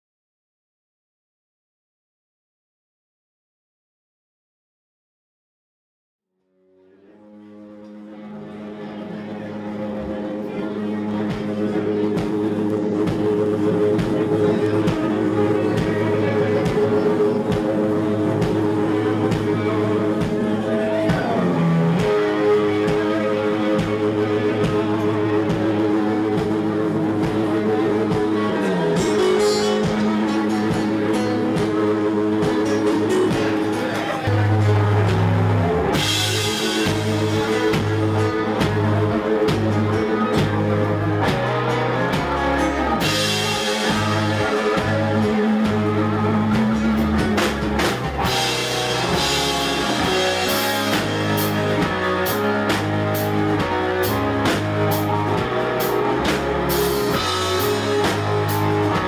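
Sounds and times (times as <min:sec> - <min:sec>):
electric guitar sustained chords: 0:06.4 - 0:59.0
rock band playing: 0:06.7 - 0:59.0.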